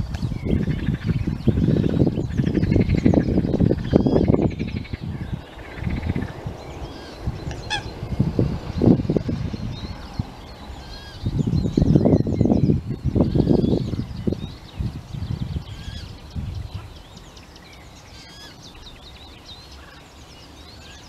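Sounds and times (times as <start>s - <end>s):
low rumbling: 0.0s - 19.8s
bird chicks peeping: 0.0s - 21.0s
sharp bird call: 6.9s - 8.2s.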